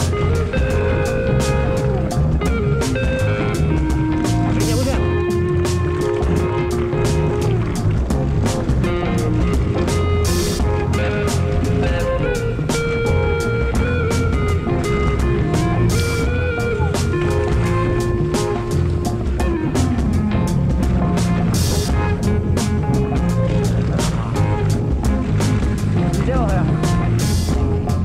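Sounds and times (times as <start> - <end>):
background music with drum beat: 0.0 - 28.0.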